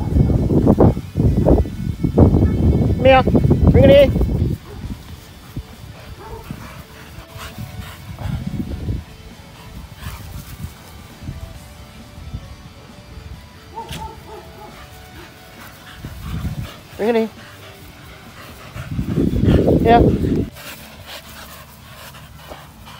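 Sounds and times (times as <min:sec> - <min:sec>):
dogs barking and growling: 0:03.4 - 0:22.9.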